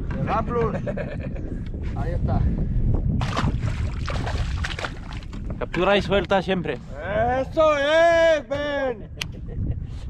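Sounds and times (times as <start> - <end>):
wind noise on microphone: 0.0 - 10.0
fish splashing into water: 3.2 - 5.4.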